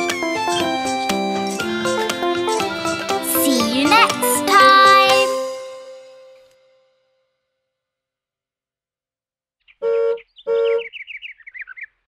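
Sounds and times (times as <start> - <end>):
high falling bird-like chirps: 9.6 - 12.0
horn-like honks: 9.8 - 10.8.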